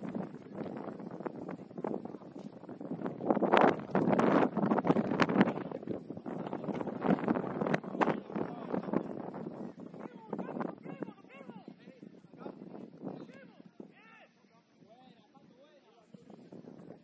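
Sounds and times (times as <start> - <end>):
wind buffeting microphone: 0.0 - 14.2, 16.0 - 17.0.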